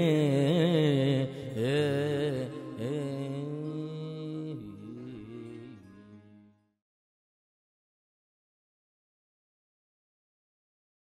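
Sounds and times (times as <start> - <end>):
man singing folk song: 0.0 - 6.5.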